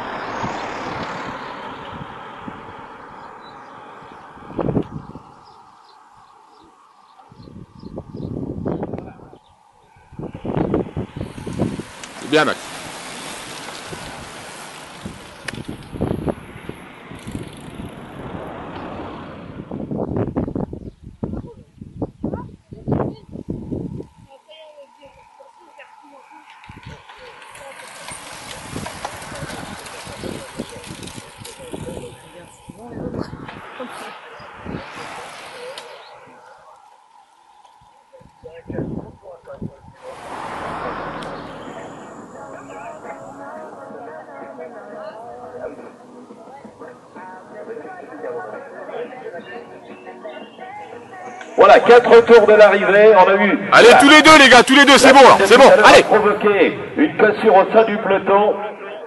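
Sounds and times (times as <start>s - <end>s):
wind rushing on microphone: 0.0s - 6.6s, 7.2s - 24.4s, 26.5s - 44.2s
road noise: 0.0s - 59.0s
indistinct spectator voices: 24.3s - 52.3s.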